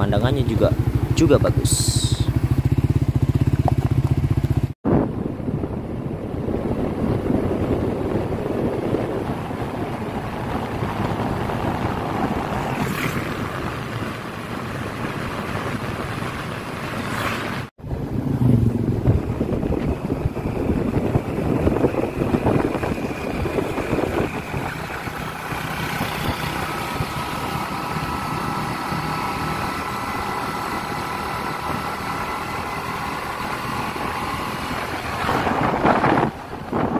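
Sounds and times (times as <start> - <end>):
motorcycle engine running: 0.0 - 36.9
wind rushing over microphone: 0.0 - 36.9.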